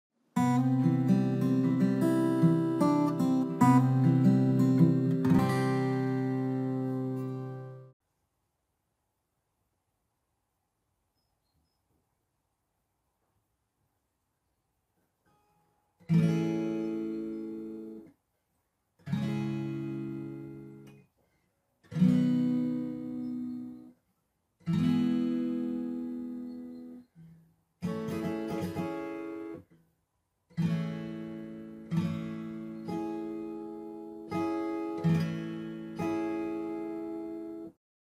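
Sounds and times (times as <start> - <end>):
acoustic guitar strumming: 0.4 - 8.0, 16.0 - 18.1, 19.0 - 20.9, 21.9 - 23.9, 24.6 - 27.1, 27.8 - 29.6, 30.6 - 37.7.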